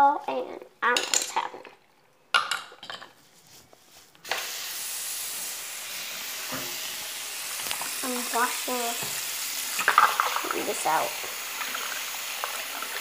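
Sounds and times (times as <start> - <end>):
tap water running into sink: 6.0 - 13.0.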